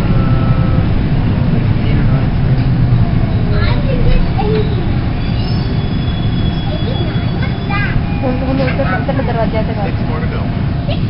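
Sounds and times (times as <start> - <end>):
passengers' voices: 0.0 - 11.0
subway train rumble: 0.0 - 11.0.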